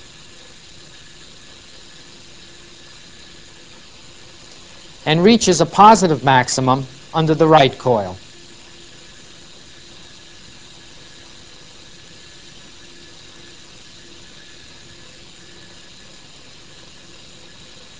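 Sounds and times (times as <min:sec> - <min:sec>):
constant hiss: 0:04.4 - 0:08.2.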